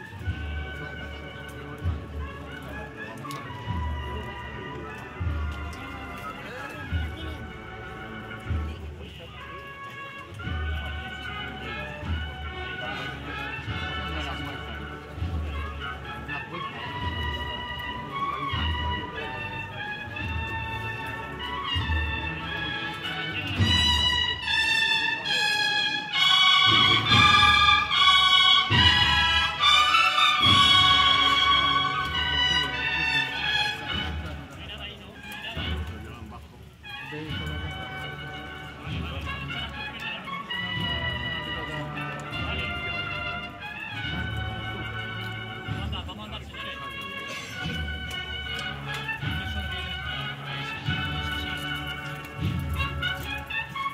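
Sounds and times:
bugles playing a march: 0.0 - 53.9
steady drum beat: 16.9 - 24.9, 26.3 - 34.5.

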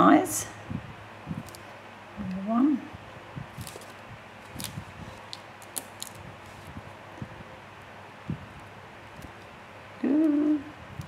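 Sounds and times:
electric fan running: 0.0 - 11.0.

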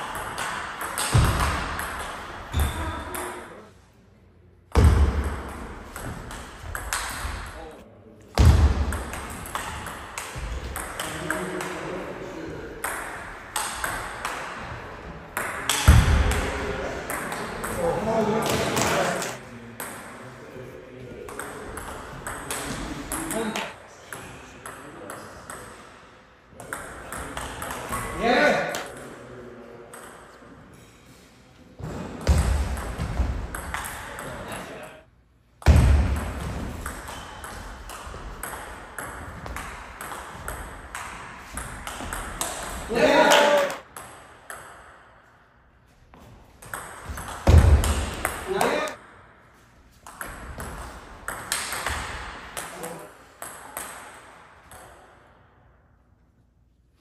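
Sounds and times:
ping pong ball on paddles: 0.0 - 3.6, 4.8 - 7.5, 8.4 - 11.8, 12.8 - 14.6, 15.3 - 19.0, 21.3 - 25.8, 26.6 - 29.2, 29.9 - 30.4, 32.2 - 34.6, 35.6 - 45.1, 46.6 - 49.3, 50.0 - 55.2
ball bouncing on table: 0.1 - 3.5.

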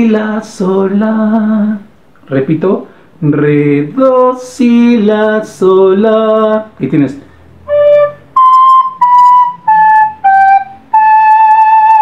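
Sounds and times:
recorder playing notes: 7.6 - 12.0.

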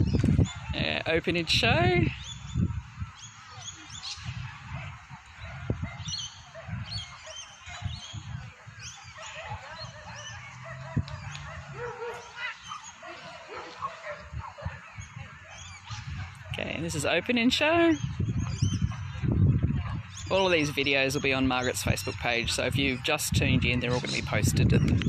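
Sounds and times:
dogs yelping: 0.0 - 0.9, 3.1 - 17.2, 18.4 - 21.0.

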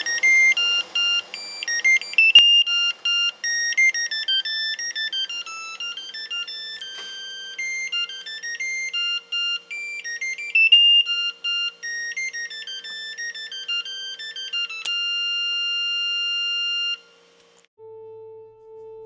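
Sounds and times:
electronic beep melody: 0.0 - 17.1.

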